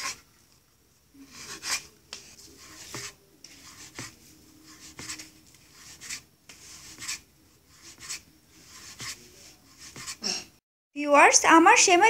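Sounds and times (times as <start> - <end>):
hands rubbing dough: 0.0 - 0.3, 1.2 - 10.2.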